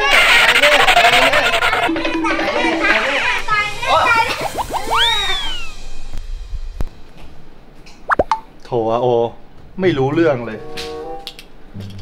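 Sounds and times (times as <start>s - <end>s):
excited voices: 0.0s - 5.8s
music: 0.0s - 7.5s, 9.9s - 12.0s
rising whistle glides: 3.8s - 6.1s
slide whistle swoop: 3.9s - 6.0s.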